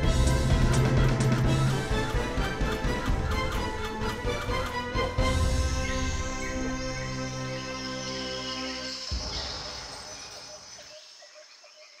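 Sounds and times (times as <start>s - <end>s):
closing music: 0.0s - 9.5s.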